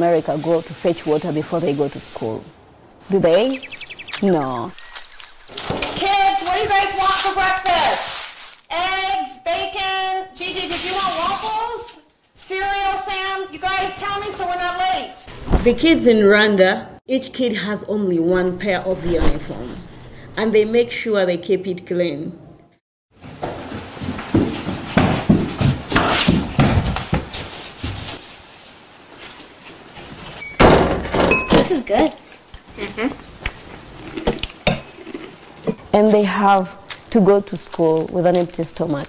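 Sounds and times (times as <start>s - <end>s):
footsteps on hardwood floor: 23.2s - 28.2s.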